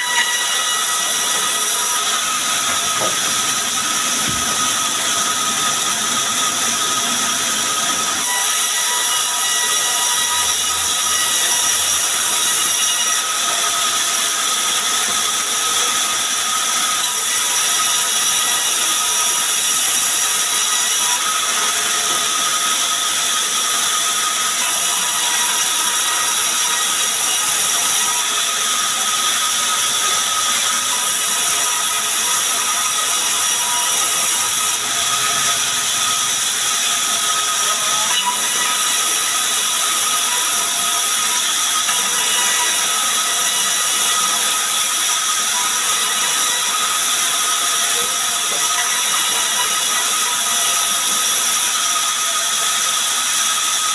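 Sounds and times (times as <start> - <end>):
band saw cutting log: 0.0 - 53.9.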